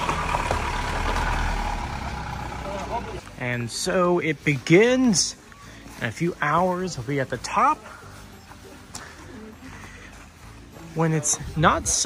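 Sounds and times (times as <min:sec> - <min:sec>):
car engine rumble: 0:00.0 - 0:03.4
tyres on gravel: 0:00.0 - 0:12.0.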